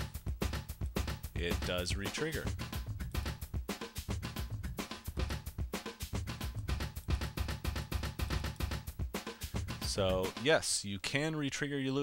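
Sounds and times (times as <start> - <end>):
drum-kit groove: 0.0 - 10.7.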